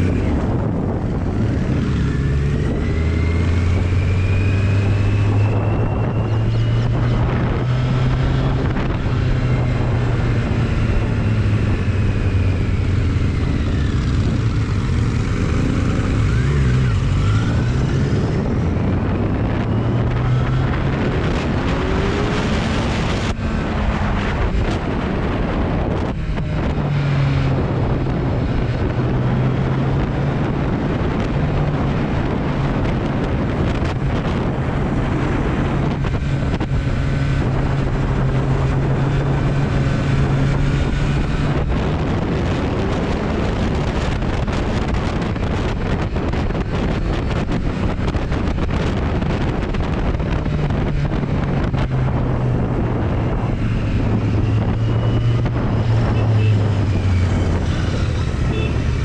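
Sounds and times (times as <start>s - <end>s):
motorcycle engine accelerating: 0.0s - 59.0s
wind noise on microphone: 0.0s - 59.0s.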